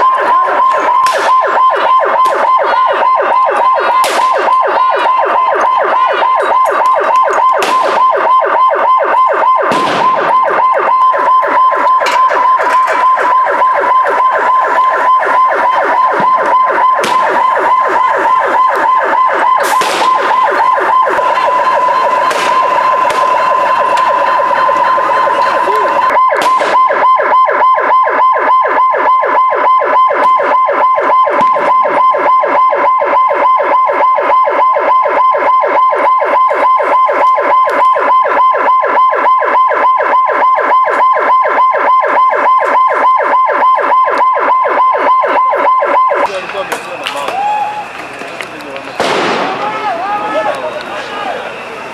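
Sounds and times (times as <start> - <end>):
police siren warbling: 0.0 - 51.9
sharp bangs: 0.6 - 27.3, 46.2 - 51.0.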